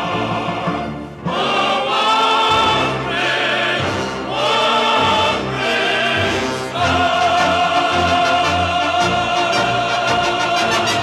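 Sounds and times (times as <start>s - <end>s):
chorus singing: 0.0s - 11.0s
orchestra: 0.0s - 11.0s.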